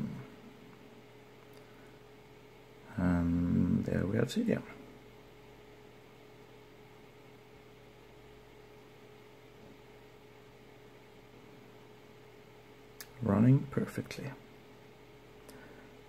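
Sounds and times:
faint steady hum: 0.0s - 16.0s
steady low hiss: 0.0s - 16.0s.

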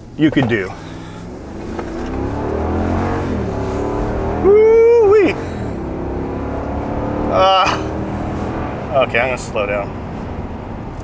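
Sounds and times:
truck engine accelerating hard: 0.4s - 11.0s.

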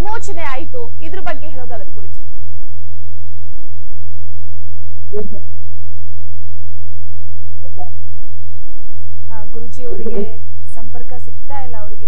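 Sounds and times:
woman speaking: 0.0s - 2.3s, 9.3s - 12.0s.

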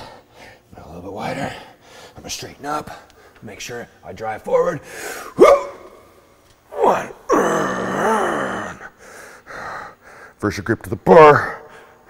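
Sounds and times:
man groaning with effort: 6.7s - 8.9s.

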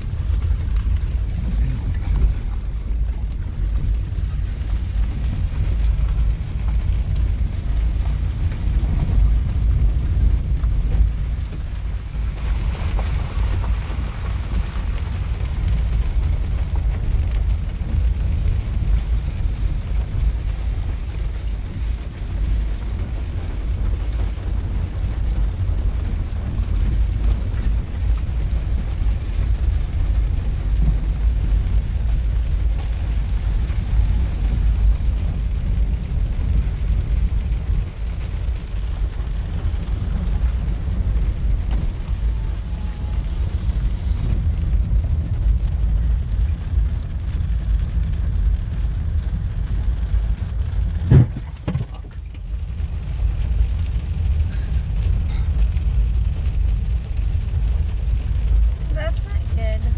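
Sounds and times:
low road rumble: 0.0s - 59.9s
wind buffeting: 50.2s - 55.0s.

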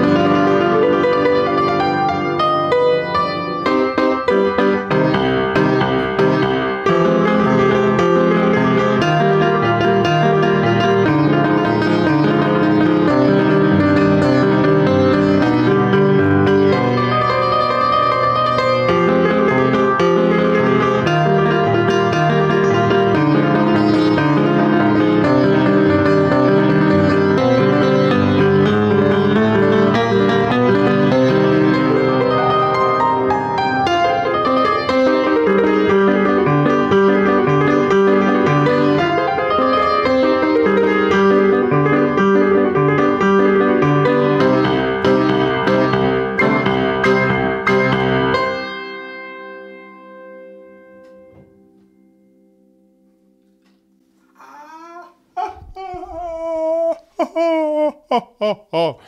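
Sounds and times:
upright piano playing: 0.0s - 54.2s
person's long rising cry: 54.4s - 59.0s.

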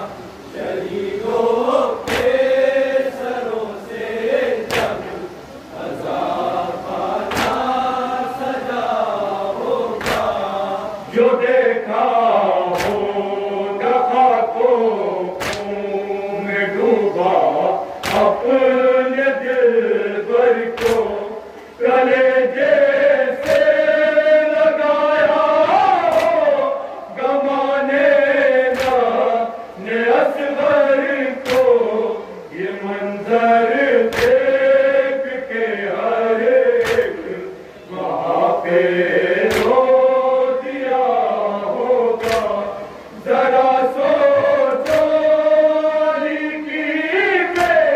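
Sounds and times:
men chanting into a microphone: 0.0s - 47.9s
chest-beating slaps: 2.0s - 2.4s, 4.7s - 5.0s, 7.3s - 7.6s, 10.0s - 10.4s, 12.7s - 13.1s, 15.4s - 15.7s, 18.0s - 18.3s, 20.8s - 21.2s, 23.4s - 23.8s, 26.0s - 26.4s, 28.7s - 29.1s, 31.4s - 31.8s, 34.1s - 34.4s, 36.8s - 37.1s, 39.5s - 39.8s, 42.2s - 42.6s, 44.8s - 45.2s, 47.5s - 47.9s.

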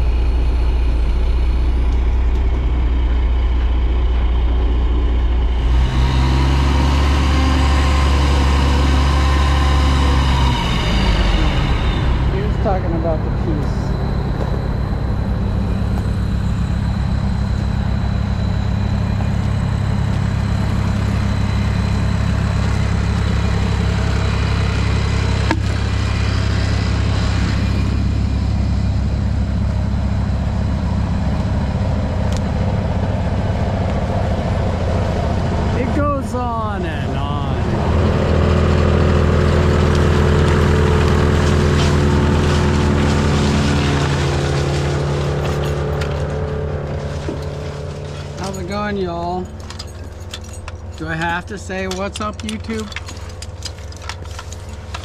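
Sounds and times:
wood chipper engine droning: 0.0s - 55.0s.

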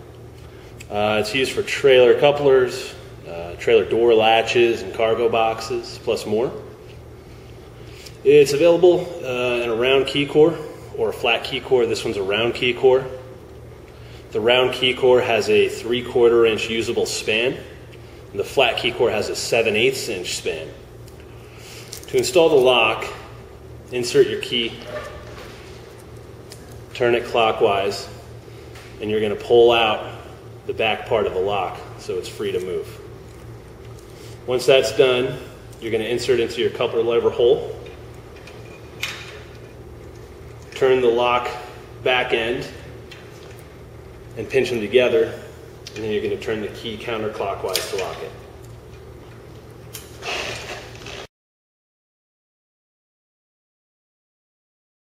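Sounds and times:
low electrical hum: 0.0s - 51.3s.

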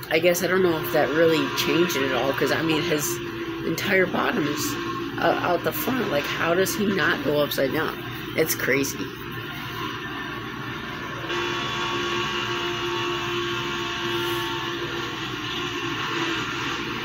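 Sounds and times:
droning race car engine: 0.0s - 17.0s.

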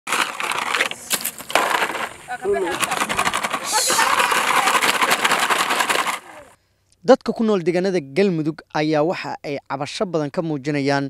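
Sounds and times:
water splashing on leaves and ground: 0.0s - 6.6s.

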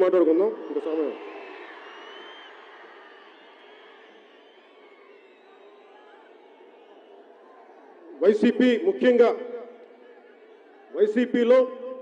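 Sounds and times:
faint crowd noise: 0.0s - 12.0s.

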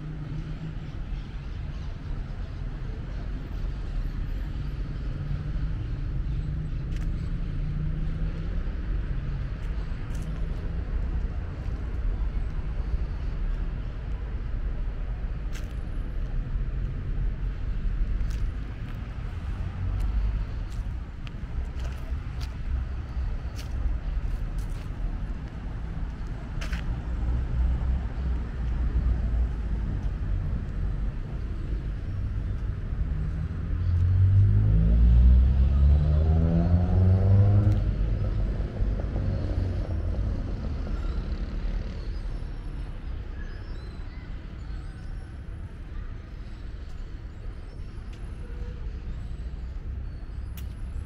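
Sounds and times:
low street traffic rumble: 0.0s - 51.0s
vehicle engine accelerating: 33.2s - 42.1s.

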